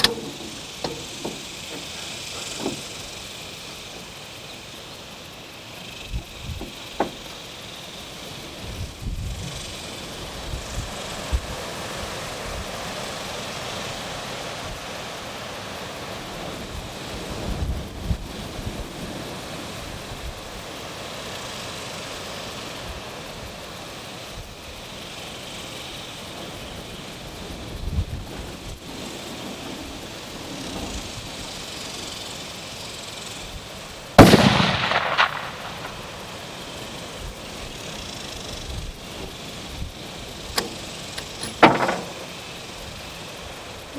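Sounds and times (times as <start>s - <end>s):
wind buffeting microphone: 5.8s - 7.4s, 8.4s - 12.8s, 16.3s - 20.6s, 26.6s - 32.2s
rifle shot: 34.2s - 36.3s.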